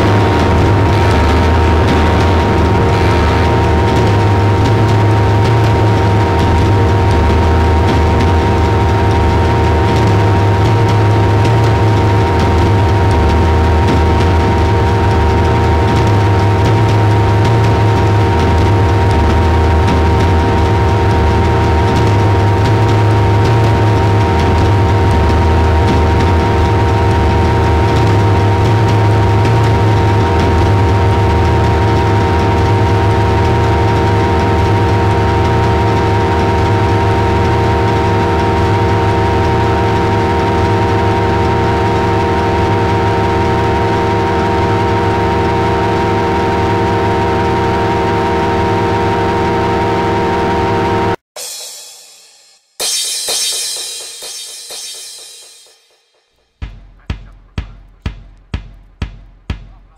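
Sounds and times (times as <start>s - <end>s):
deep rumble and hiss: 0.0s - 45.7s
noise music drone: 0.0s - 51.2s.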